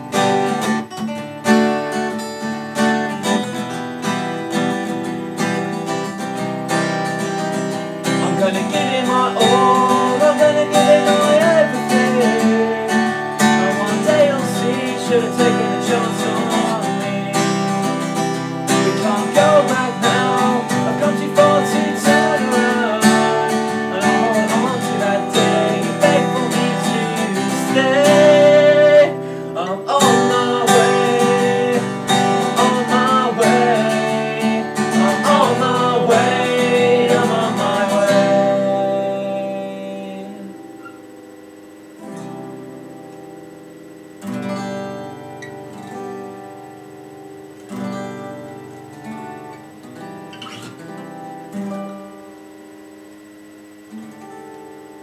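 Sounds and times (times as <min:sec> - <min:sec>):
acoustic guitars strumming: 0:00.0 - 0:55.0
man singing: 0:08.1 - 0:40.8.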